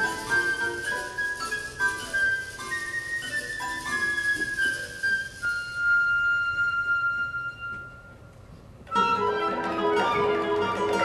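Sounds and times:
flute melody: 0.0s - 11.0s
plucked guitar: 8.9s - 11.0s.

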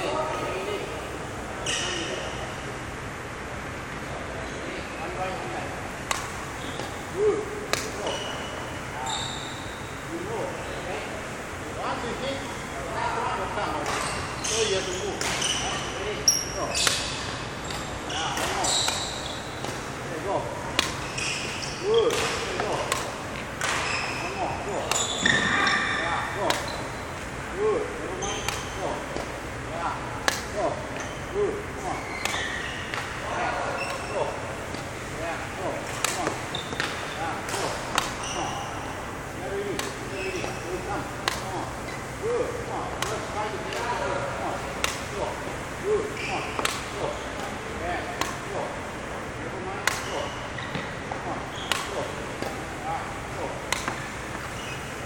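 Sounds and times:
badminton rackets hitting shuttlecocks: 6.0s - 7.0s, 7.6s - 8.7s, 15.2s - 15.9s, 16.8s - 20.0s, 20.6s - 27.2s, 28.2s - 29.5s, 30.1s - 31.2s, 32.1s - 42.3s, 42.9s - 45.6s, 46.3s - 49.2s, 49.8s - 55.0s.

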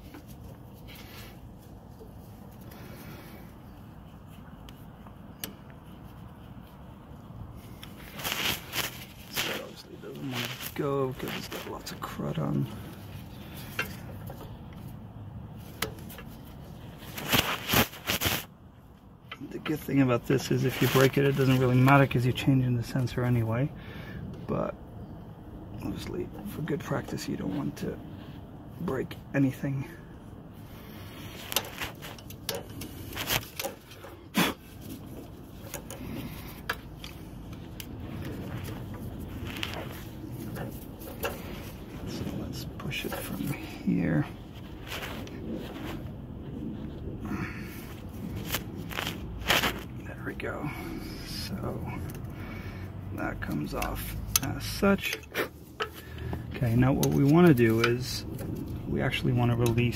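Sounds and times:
steady background noise: 0.0s - 59.9s
screwdriver clicking and scraping metal: 34.8s - 42.3s.

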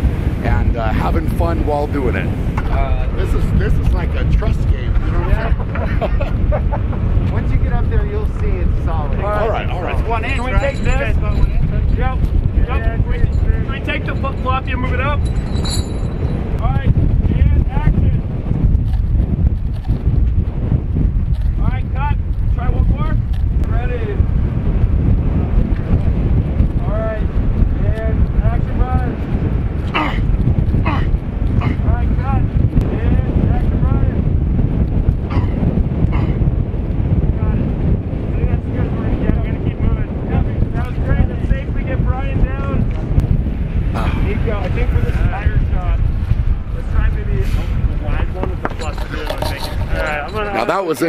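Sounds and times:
wind buffeting microphone: 0.0s - 51.0s
indistinct voices talking: 0.4s - 18.0s, 46.7s - 51.0s
low rumble: 2.2s - 50.5s.

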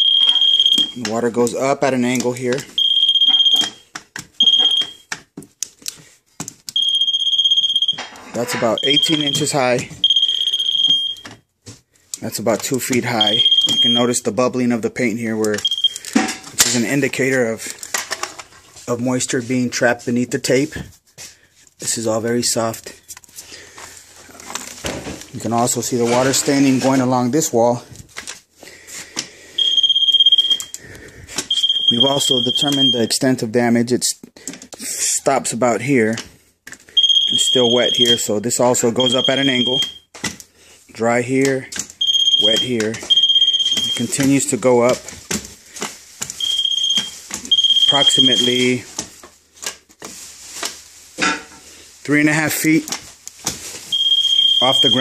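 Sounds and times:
moisture meter high beep: 0.0s - 1.1s, 2.8s - 3.8s, 4.4s - 5.1s, 6.8s - 11.4s, 13.1s - 14.2s, 15.6s - 16.0s, 29.6s - 30.8s, 31.5s - 33.2s, 37.0s - 38.3s, 38.9s - 40.1s, 42.0s - 44.3s, 46.4s - 48.8s, 53.9s - 55.0s.

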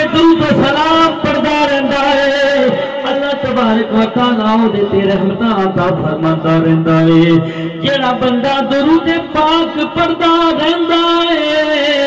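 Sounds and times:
man singing devotional verse: 0.0s - 12.0s.

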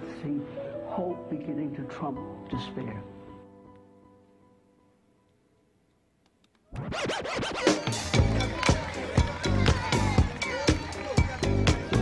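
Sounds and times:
music: 0.0s - 5.8s, 6.7s - 12.0s
turntable scratching: 6.7s - 8.4s.

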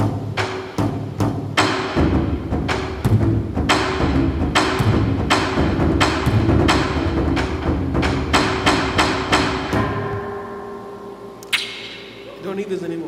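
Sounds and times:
heavy electronic drum hits: 0.0s - 10.5s
sharp click: 11.4s - 12.1s.

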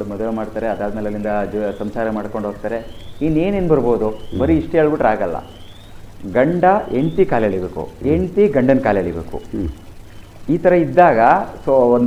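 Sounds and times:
man talking: 0.0s - 5.5s, 6.2s - 9.8s, 10.5s - 12.0s.

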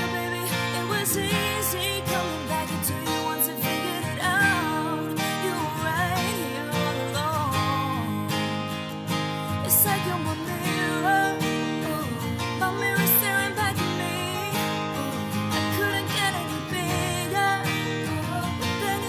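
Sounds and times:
acoustic guitar strummed chords: 0.0s - 19.0s.

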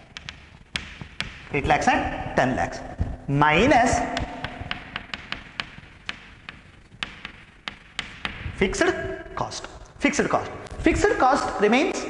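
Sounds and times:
chalk tapping on chalkboard: 0.0s - 11.1s.

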